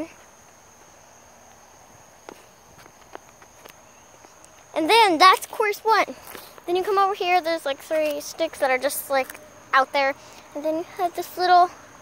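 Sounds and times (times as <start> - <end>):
footsteps on tree stumps: 0.1 - 7.0.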